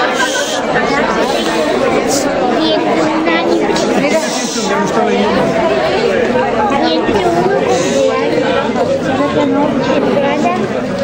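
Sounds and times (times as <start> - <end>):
overlapping crowd chatter: 0.0 - 11.0.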